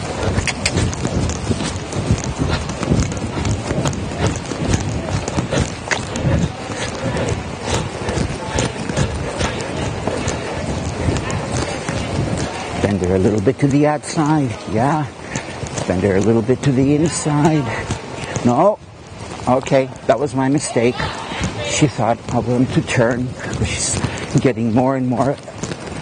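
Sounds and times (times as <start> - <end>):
continuous rustling: 0.0 - 26.0
hoofbeats on soft dirt: 0.0 - 26.0.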